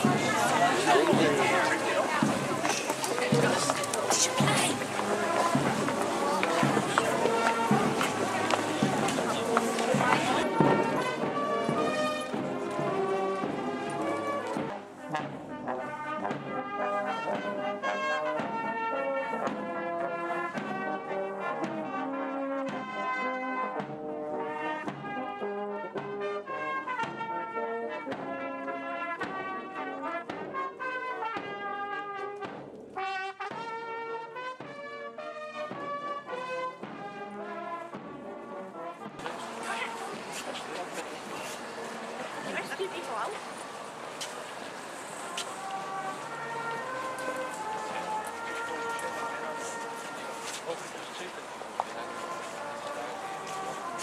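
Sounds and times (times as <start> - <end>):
brass band playing: 0.0 - 54.0.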